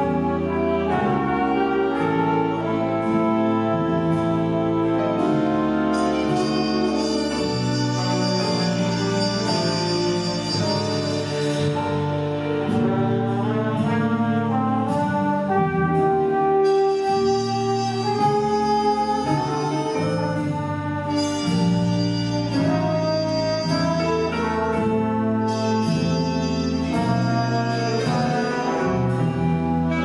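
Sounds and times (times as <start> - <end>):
jazz big band ballad: 0.0 - 30.0.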